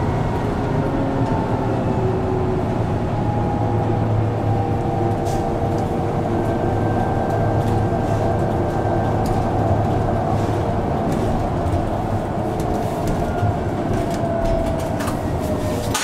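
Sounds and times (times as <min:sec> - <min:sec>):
bus engine and road drone: 0:00.0 - 0:16.0.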